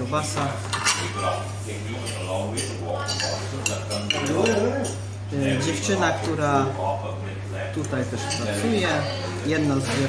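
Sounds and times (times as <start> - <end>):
background chatter: 0.0 - 10.0
cutlery clinking on plate: 0.6 - 1.4, 2.0 - 5.0.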